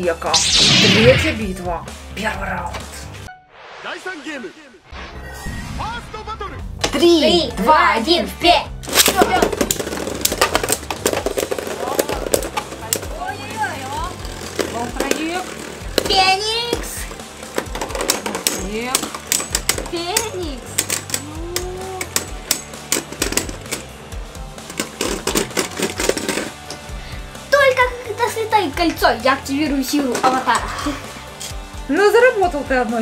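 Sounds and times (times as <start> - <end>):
background music: 0.0 - 33.0
spinning tops whirring and clashing: 0.3 - 1.4.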